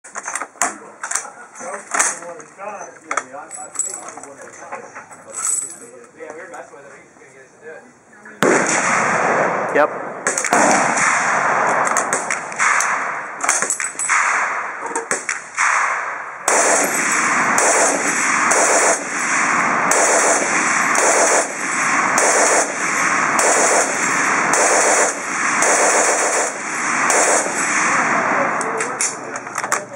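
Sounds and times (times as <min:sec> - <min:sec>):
machine gun firing: 0:08.4 - 0:29.0.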